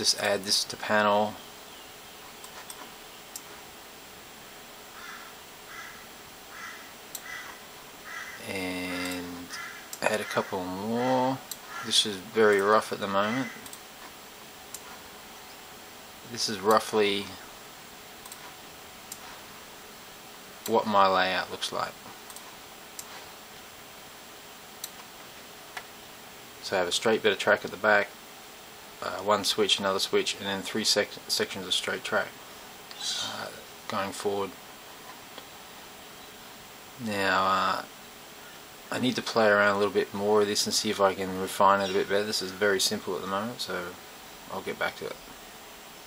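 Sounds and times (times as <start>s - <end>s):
faint room hiss: 0.0s - 46.0s
soft clicks: 2.4s - 3.6s, 9.0s - 10.0s, 13.6s - 15.6s, 18.2s - 19.4s, 22.2s - 23.2s, 24.8s - 25.9s
harsh bird calls: 4.9s - 13.7s, 32.9s - 33.5s.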